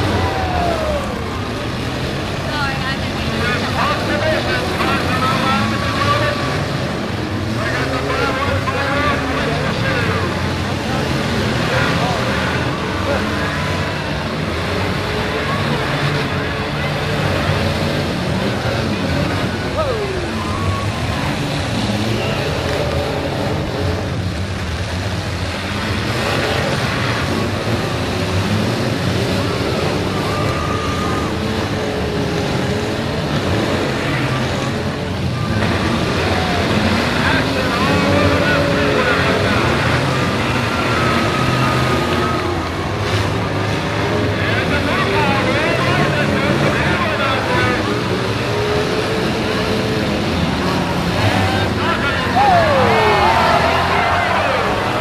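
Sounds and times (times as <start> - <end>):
car engines revving: 0.0 - 55.0
crowd voices: 0.0 - 55.0.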